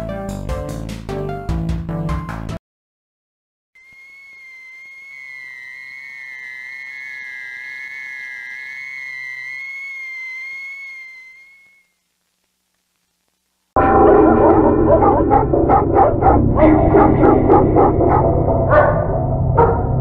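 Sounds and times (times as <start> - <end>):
wavering high electronic tone: 3.8 - 12.0, 13.8 - 18.7.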